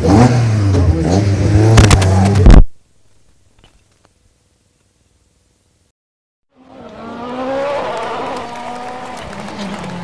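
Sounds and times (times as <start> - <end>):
car engine revving hard: 0.0 - 2.0.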